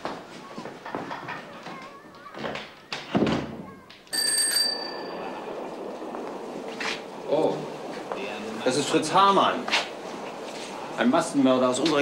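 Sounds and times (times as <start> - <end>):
small bell ringing: 4.1 - 5.6
steady background hiss: 4.8 - 12.0.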